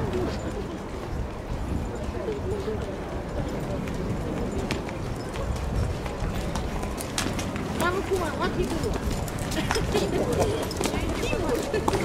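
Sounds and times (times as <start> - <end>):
horse hooves clip-clopping: 0.0 - 12.0
people's voices: 0.0 - 12.0.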